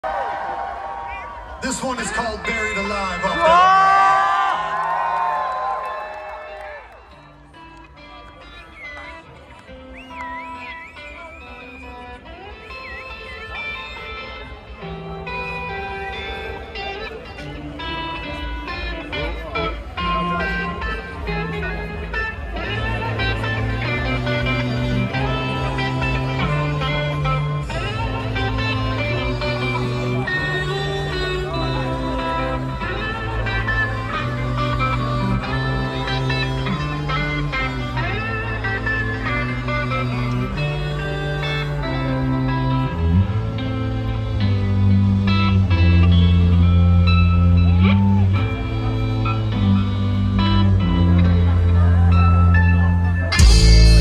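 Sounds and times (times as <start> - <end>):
live electric guitar: 0.1 - 54.0
heavy metal band playing: 1.6 - 4.2, 53.1 - 54.0
low bass notes: 14.7 - 54.0.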